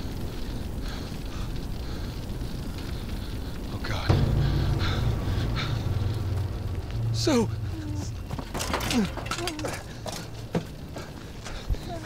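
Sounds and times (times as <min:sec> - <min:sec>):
windy hiss: 0:00.0 - 0:12.0
low steady rumbling drone: 0:03.3 - 0:10.9.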